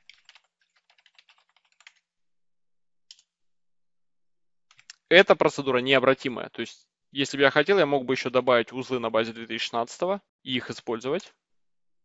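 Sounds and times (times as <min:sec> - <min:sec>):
fast keyboard typing: 0:00.0 - 0:02.0.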